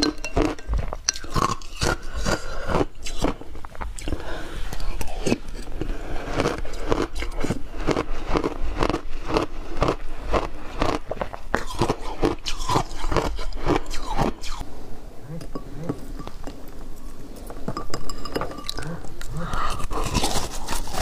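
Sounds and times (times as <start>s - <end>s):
person crunching icy slush: 5.2s - 14.3s, 19.6s - 21.0s.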